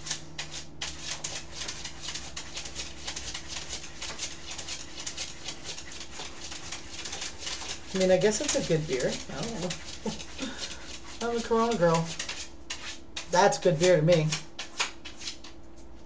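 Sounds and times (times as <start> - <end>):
dog scratching at a surface: 0.0 - 15.5
steady low hum: 0.0 - 16.0.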